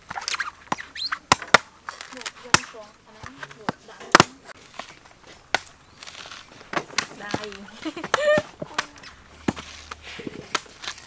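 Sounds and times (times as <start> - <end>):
cleaver chopping coconut husk: 0.0 - 11.0
high chirping squeaks: 0.1 - 2.5, 5.7 - 6.6.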